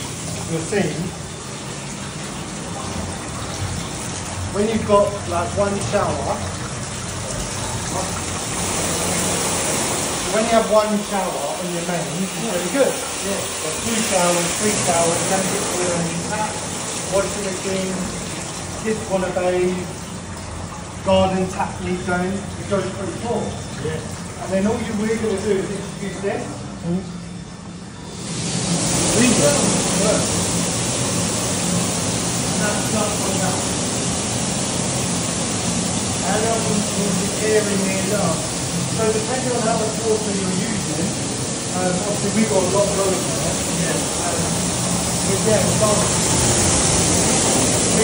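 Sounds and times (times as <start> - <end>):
water splashing into steel trough: 0.0 - 21.8
water spraying into steel trough: 0.0 - 26.5, 28.0 - 48.0
steady low hum: 0.0 - 48.0.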